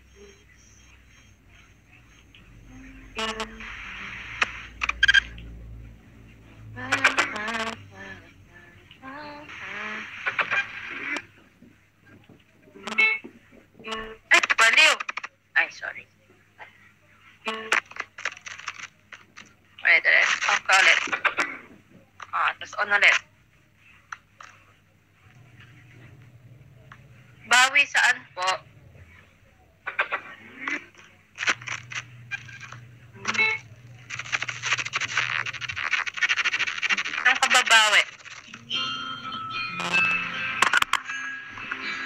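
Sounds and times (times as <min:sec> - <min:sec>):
woman speaking: 0:02.7 - 0:04.2, 0:06.8 - 0:10.1, 0:37.2 - 0:38.1.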